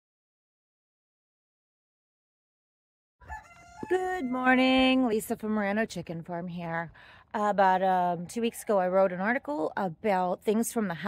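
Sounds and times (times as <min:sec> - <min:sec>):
rooster crowing faintly: 0:03.2 - 0:04.4
woman speaking: 0:03.8 - 0:11.0.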